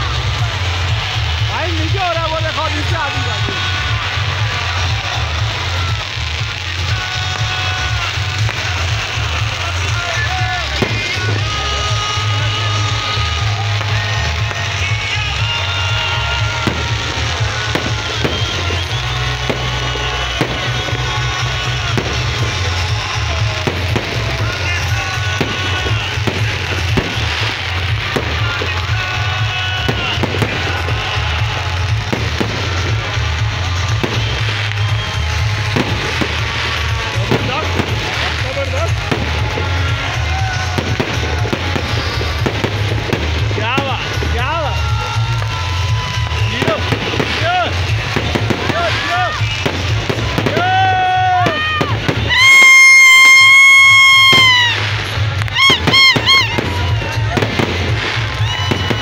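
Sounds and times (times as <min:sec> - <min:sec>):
fireworks bangs and crackles: 0:00.0 - 0:59.0
loud music with heavy bass: 0:00.0 - 0:59.0.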